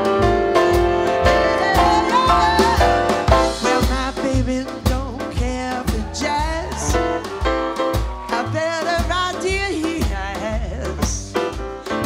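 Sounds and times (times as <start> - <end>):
double bass low notes: 0.0 - 12.0
jazz trio playing swing: 0.0 - 12.0
person singing: 1.2 - 11.4.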